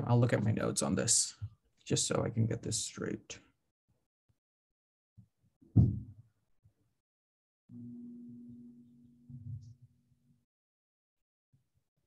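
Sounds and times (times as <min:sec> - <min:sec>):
loud dull thump: 0:05.8 - 0:06.1.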